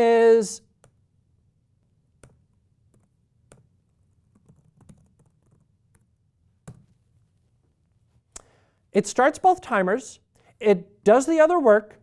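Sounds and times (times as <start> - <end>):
computer keyboard keystrokes: 2.2 - 6.1.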